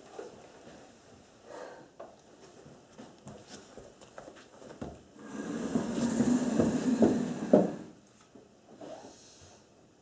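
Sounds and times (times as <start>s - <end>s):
armchair scraping across floor: 5.2s - 8.0s.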